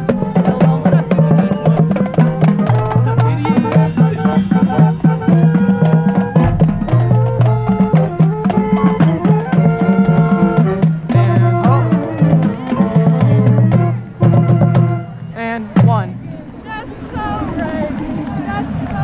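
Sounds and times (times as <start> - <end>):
marching band drums and percussion: 0.0 - 16.2
held low brass notes: 0.0 - 16.4.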